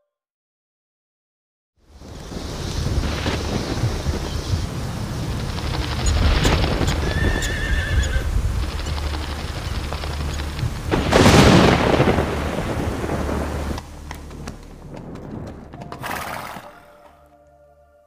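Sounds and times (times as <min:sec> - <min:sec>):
low steady drone: 0:01.8 - 0:07.1, 0:08.2 - 0:16.0
rushing noise: 0:01.8 - 0:17.0
horse whinnying: 0:07.0 - 0:08.3, 0:15.9 - 0:17.3.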